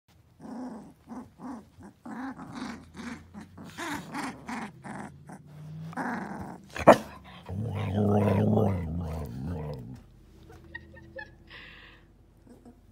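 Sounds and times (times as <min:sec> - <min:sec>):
puppies play-growling and yipping: 0:00.1 - 0:11.3, 0:12.3 - 0:12.9
deep drawn-out growl: 0:02.0 - 0:10.2.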